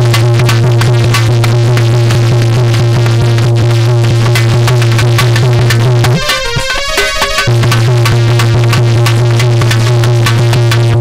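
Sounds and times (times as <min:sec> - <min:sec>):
quick percussion strokes: 0:00.0 - 0:11.0
electronic keyboard music: 0:04.6 - 0:10.3.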